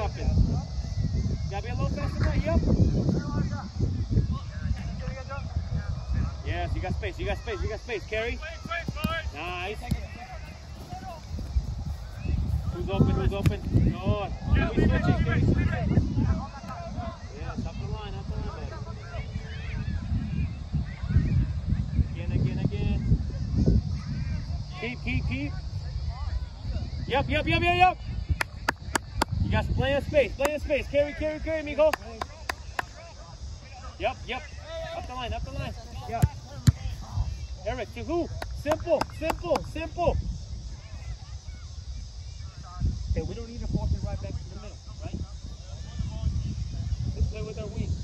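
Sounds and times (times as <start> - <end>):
wind rumble on microphone: 0.0 - 48.0.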